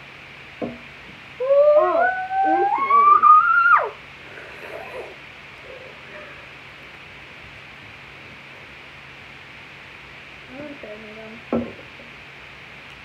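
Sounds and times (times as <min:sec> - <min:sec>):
girl hooting into water bottle: 0:01.4 - 0:04.0.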